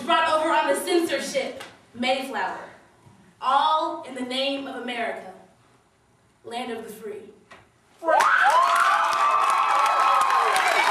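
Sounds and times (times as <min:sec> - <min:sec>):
audience cheering and whooping: 0:08.0 - 0:10.9
audience clapping: 0:08.2 - 0:10.9.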